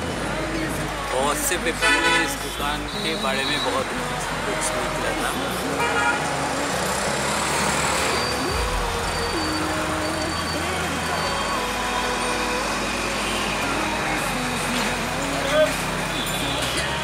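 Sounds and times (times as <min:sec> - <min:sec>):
people talking: 0:00.0 - 0:06.6
traffic noise: 0:00.0 - 0:17.0.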